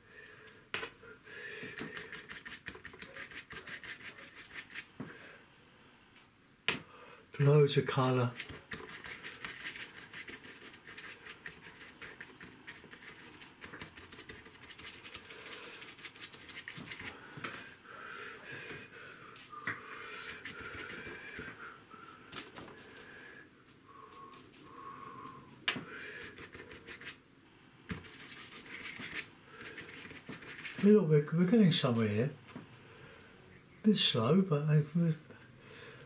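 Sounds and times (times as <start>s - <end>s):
paintbrush scratchy strokes on paper: 1.7s - 4.9s, 8.0s - 17.2s, 19.4s - 21.5s, 26.2s - 27.2s, 27.9s - 31.0s.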